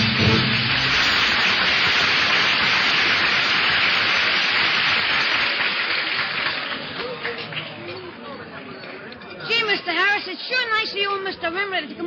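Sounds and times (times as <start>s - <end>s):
studio audience applauding: 0.0s - 7.9s.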